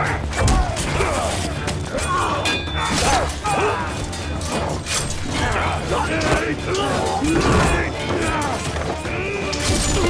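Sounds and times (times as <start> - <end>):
dramatic music: 0.0 - 10.0
men shouting and grunting: 0.0 - 10.0
weapons clashing: 0.0 - 10.0.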